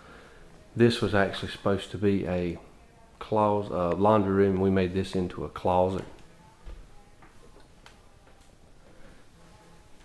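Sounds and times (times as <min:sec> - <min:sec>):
soft footsteps on floor: 0:05.9 - 0:10.0.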